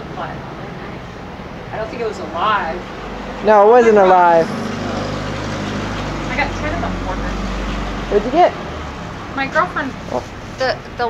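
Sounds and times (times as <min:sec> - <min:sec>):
faint voices: 0:00.0 - 0:05.1
vehicle engine idling: 0:00.0 - 0:11.0.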